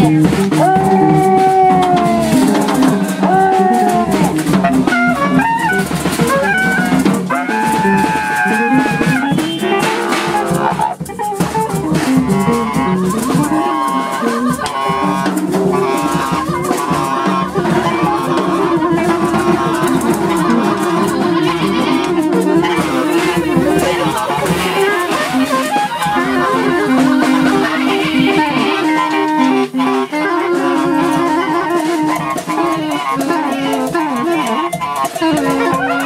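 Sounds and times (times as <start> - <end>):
person singing long held note: 0.0 - 4.4
busy electric guitar: 0.0 - 36.0
drum kit: 0.0 - 36.0
light cymbal patter: 0.0 - 36.0
lower instrumental lines: 0.0 - 36.0
saxophone high note: 0.0 - 36.0.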